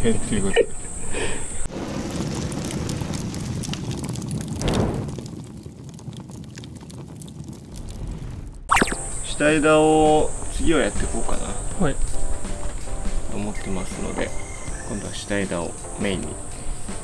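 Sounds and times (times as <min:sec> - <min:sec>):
rumbling transition sound effect: 0:07.7 - 0:09.4
high insect buzz: 0:08.7 - 0:17.0.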